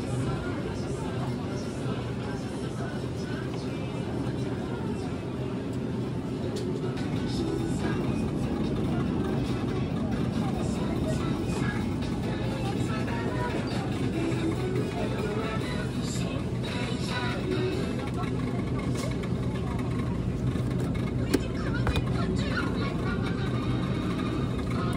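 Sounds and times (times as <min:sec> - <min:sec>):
faint voices of shoppers: 0:00.0 - 0:24.9
background music: 0:01.7 - 0:21.1.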